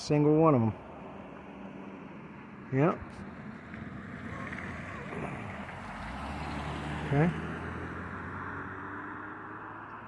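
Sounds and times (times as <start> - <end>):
outdoor background rumble: 0.0 - 10.0.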